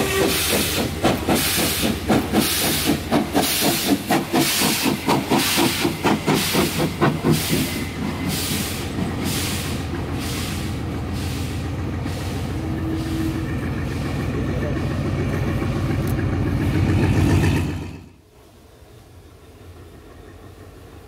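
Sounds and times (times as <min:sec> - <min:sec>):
diesel locomotive rumbling: 0:00.0 - 0:21.0.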